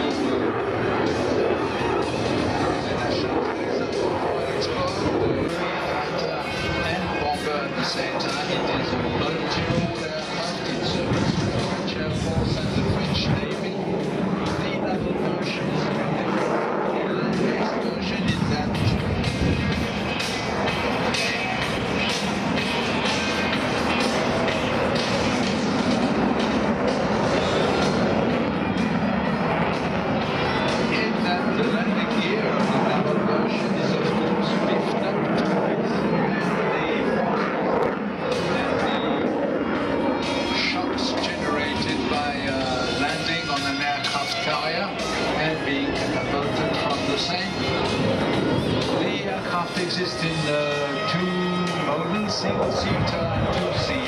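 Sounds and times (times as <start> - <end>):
jet engines roaring: 0.0 - 54.0
music over public address system: 0.0 - 54.0.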